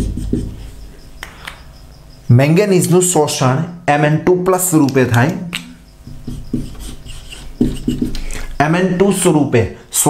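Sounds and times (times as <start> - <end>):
marker writing on whiteboard: 0.0 - 1.7, 4.8 - 9.3.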